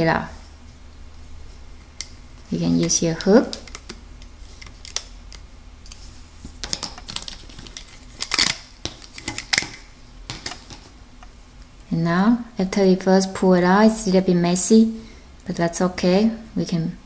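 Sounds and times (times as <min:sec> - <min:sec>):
rubber bands clicking and rustling: 0:02.6 - 0:04.0.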